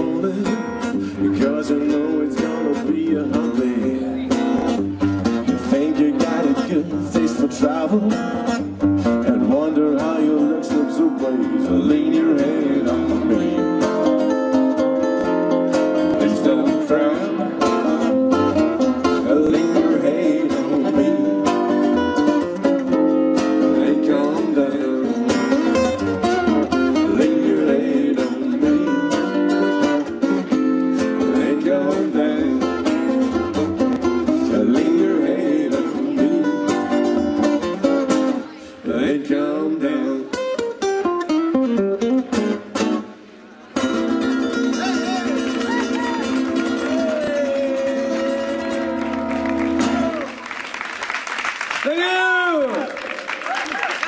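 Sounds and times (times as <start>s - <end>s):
acoustic guitars strumming: 0.0s - 50.4s.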